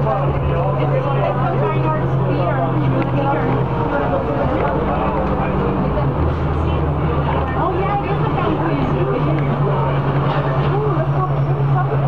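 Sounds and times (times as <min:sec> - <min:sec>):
bus diesel engine running: 0:00.0 - 0:12.0
people talking: 0:00.0 - 0:12.0.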